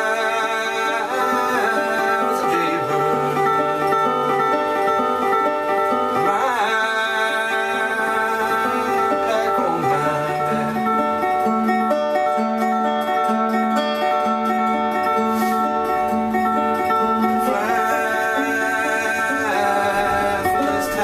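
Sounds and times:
resonator guitar picking: 0.0s - 21.0s.

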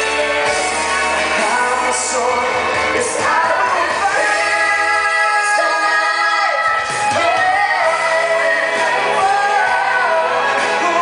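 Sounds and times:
full band backing: 0.0s - 11.0s
male singer: 0.0s - 11.0s.

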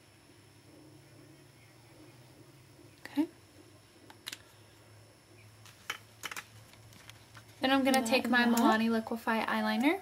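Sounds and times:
plastic pencils clicking: 4.1s - 4.5s.

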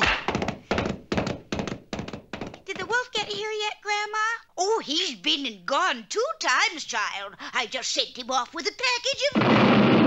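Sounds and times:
heavy cartoon thump: 0.0s - 3.0s, 9.4s - 10.0s
hollow wooden knocks: 0.0s - 3.4s.

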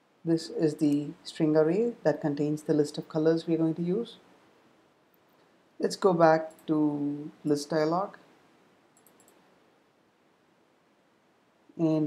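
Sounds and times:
computer mouse clicks: 9.0s - 9.4s.

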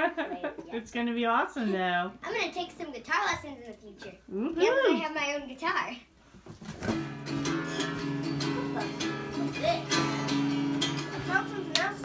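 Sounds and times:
acoustic guitar strumming: 6.9s - 12.0s.

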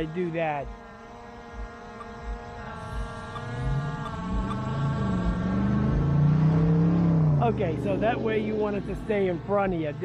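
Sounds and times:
car approaching: 0.0s - 10.0s
drone propellers whining: 0.0s - 10.0s.

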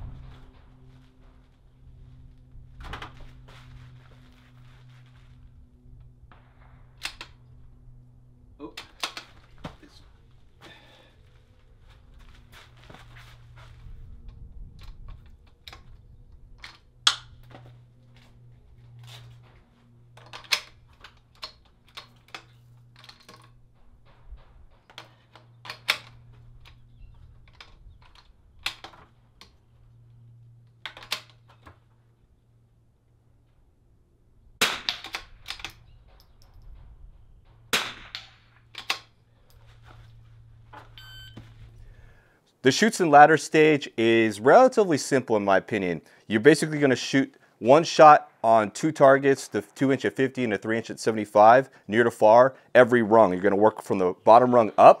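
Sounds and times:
rifle shots: 34.6s - 35.4s, 37.7s - 38.6s.

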